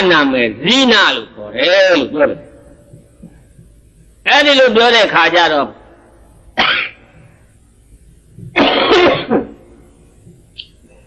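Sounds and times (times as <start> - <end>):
person coughing: 8.6 - 9.6.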